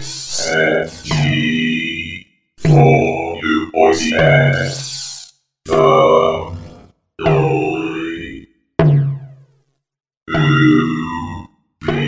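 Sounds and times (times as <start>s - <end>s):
buzzy voice-like electronic effects: 0.0s - 8.4s, 10.3s - 12.0s.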